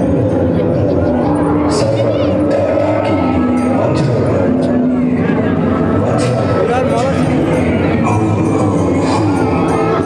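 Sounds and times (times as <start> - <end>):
crowd voices: 0.0 - 10.0
loud steady din: 0.0 - 10.0.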